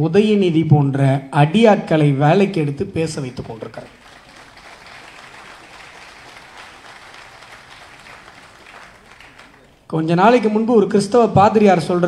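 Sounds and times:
audience applauding: 0:03.4 - 0:09.9.

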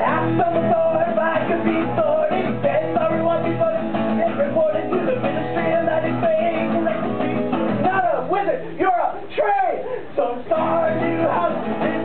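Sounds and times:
acoustic guitar strumming: 0:00.0 - 0:12.0
man singing: 0:00.0 - 0:12.0.

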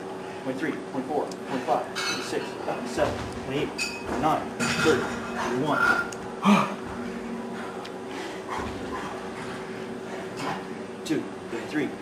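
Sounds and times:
man groaning: 0:06.4 - 0:06.8
man breathing hard: 0:06.4 - 0:10.8.

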